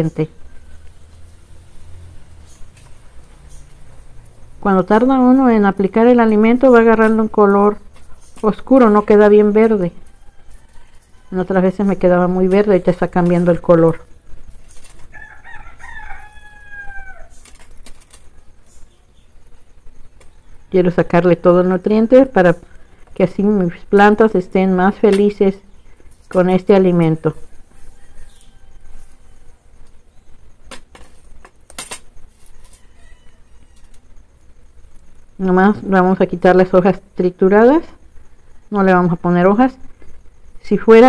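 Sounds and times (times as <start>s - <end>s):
rooster crowing: 0.3s - 2.2s, 9.7s - 11.9s, 15.0s - 18.8s, 27.3s - 30.6s, 32.3s - 35.3s.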